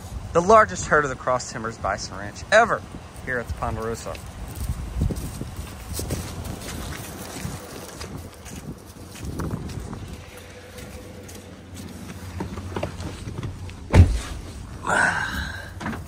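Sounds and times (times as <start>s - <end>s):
footsteps crunching through dry grass: 2.9s - 14.8s
low rumble: 2.9s - 15.8s
handheld camera rustling: 4.3s - 14.7s
heavy thump: 12.4s - 14.5s.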